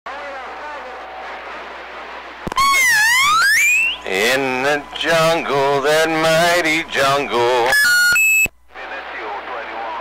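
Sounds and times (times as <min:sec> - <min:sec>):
whistle-like tone gliding upward: 0:02.7 - 0:04.0.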